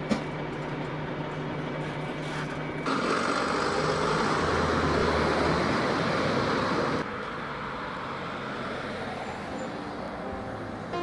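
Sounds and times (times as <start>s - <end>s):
car driving along street: 2.8s - 11.0s.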